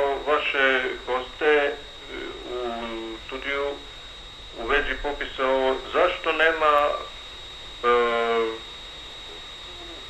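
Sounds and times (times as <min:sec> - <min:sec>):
man's voice over telephone: 0:00.0 - 0:03.8, 0:04.6 - 0:07.1, 0:07.8 - 0:08.6
telephone line hiss: 0:00.0 - 0:10.0.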